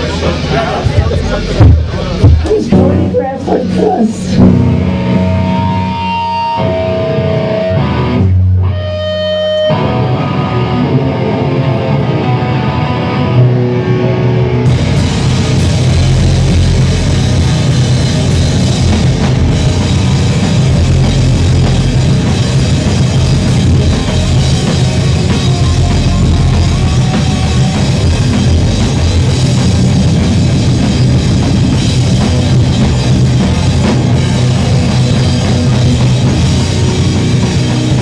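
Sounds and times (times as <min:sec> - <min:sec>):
electric guitar sustained notes: 0:00.0 - 0:38.0
rock band with drums: 0:00.0 - 0:38.0.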